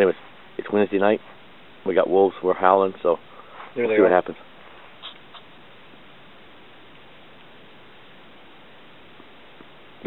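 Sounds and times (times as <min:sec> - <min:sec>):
camera background hiss: 0:03.9 - 0:10.0.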